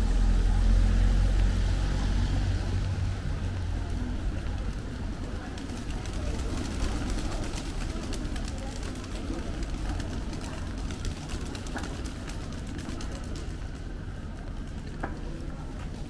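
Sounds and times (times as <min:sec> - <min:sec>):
low city rumble: 0:00.0 - 0:16.0
passers-by talking: 0:00.0 - 0:16.0.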